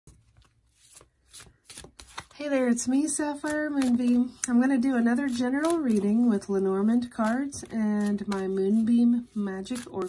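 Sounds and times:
cards being shuffled: 0.1 - 2.4, 3.3 - 10.0
cards slapping: 0.1 - 2.4, 3.3 - 4.6, 5.2 - 6.3, 7.0 - 10.0.

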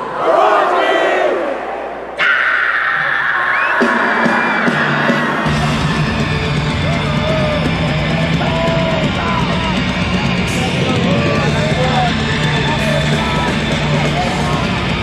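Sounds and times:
crowd yelling and cheering: 0.0 - 15.0
heavy metal band playing: 3.1 - 15.0.

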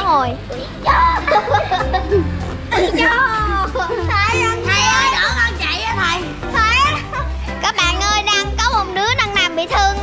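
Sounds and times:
background music with bass line: 0.0 - 10.0
children calling out: 0.5 - 10.0.

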